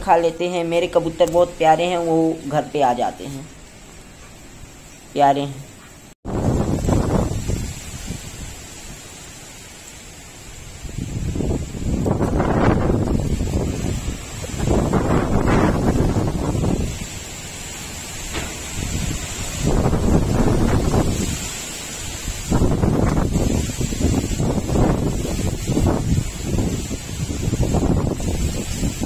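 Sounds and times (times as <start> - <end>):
leaves rustling: 0.0 - 29.0
wind buffeting microphone: 6.2 - 9.0, 10.5 - 29.0
gusty storm wind: 6.2 - 29.0.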